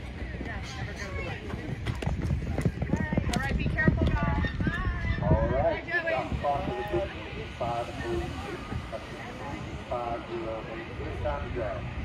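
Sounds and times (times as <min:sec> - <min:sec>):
horse hoofbeats on dirt: 0:00.0 - 0:05.0.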